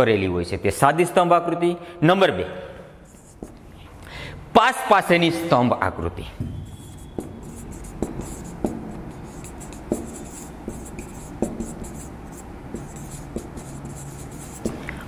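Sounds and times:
marker pen writing on whiteboard: 3.0 - 3.8, 6.4 - 15.0.

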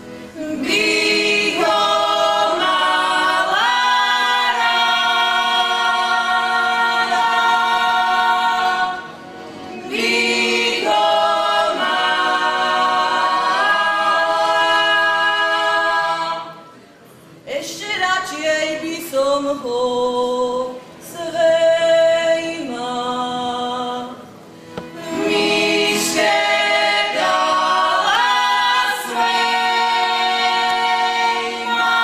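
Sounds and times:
group singing folk song: 0.0 - 16.8, 17.6 - 32.0.

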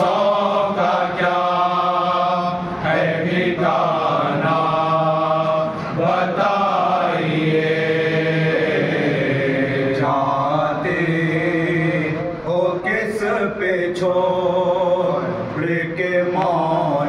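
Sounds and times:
lead reciter singing into microphone: 0.0 - 17.0
men chanting in unison: 0.0 - 17.0.

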